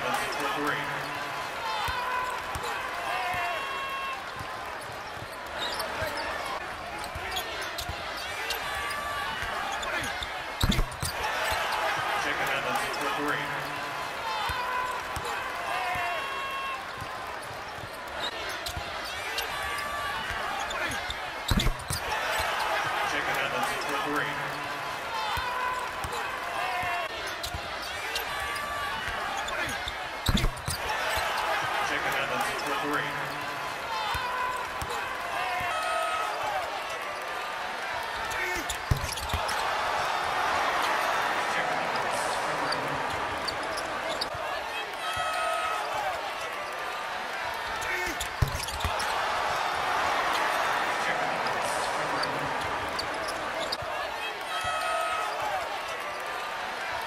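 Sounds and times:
basketball court noise: 0.0s - 57.0s
crowd chatter: 0.0s - 57.0s.

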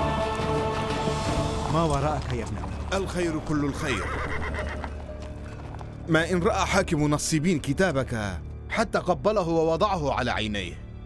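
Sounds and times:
hooves clip-clopping: 0.0s - 6.8s
horse whinnying: 3.5s - 5.4s.

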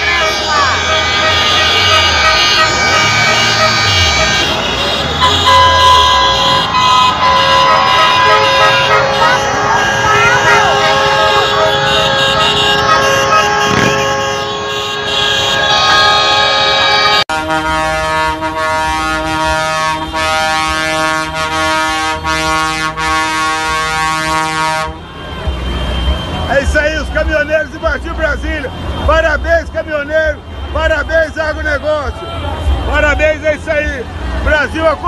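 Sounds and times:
voices shouting: 0.0s - 17.2s
truck air horns blaring: 0.0s - 34.6s
car horns blaring: 0.0s - 35.0s.

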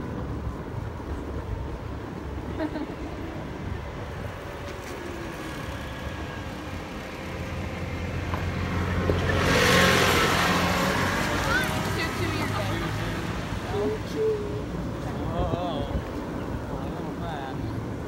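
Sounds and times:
go-kart motor humming: 0.5s - 16.6s.

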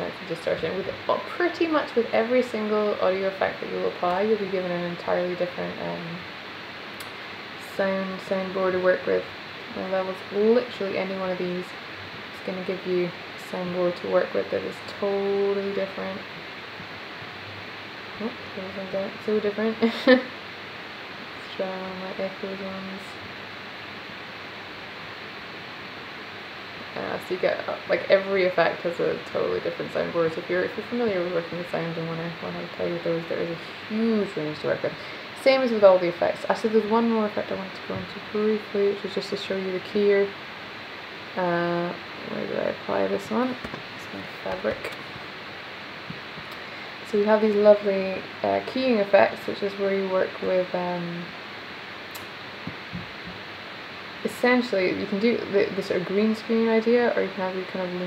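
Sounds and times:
steady background hiss: 0.0s - 58.0s
soft low thumps: 52.6s - 53.4s.

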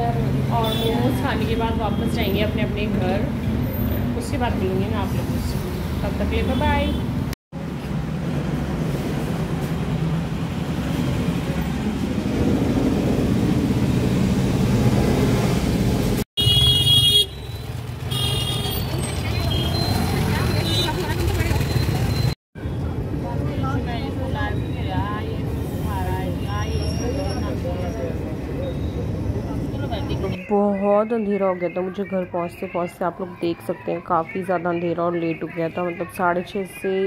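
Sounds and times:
people talking: 0.0s - 3.3s, 4.2s - 7.0s, 19.3s - 21.9s, 23.2s - 37.0s
traffic engine and road noise: 0.0s - 37.0s
vehicle horns honking: 0.6s - 2.3s, 16.4s - 22.0s.

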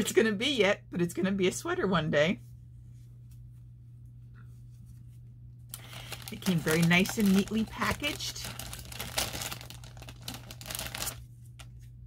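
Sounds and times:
packaging crinkling and rustling: 5.7s - 11.9s.

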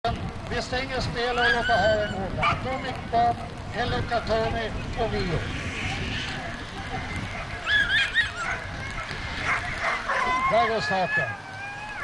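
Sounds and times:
dogs yelping: 1.3s - 2.7s, 7.2s - 12.0s.

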